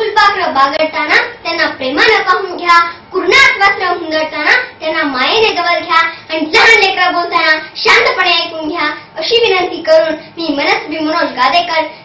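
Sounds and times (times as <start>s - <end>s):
girl talking: 0.0s - 12.0s.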